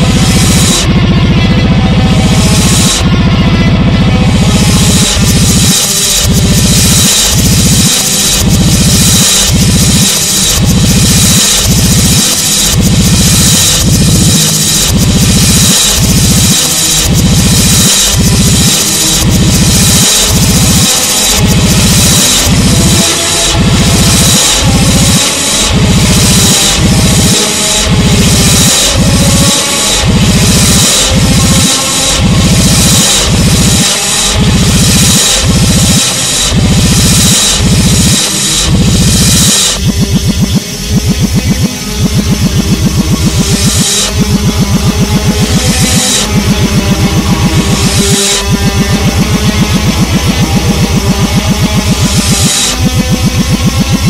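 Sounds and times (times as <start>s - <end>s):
reversed distorted metal music: 0.0s - 54.0s.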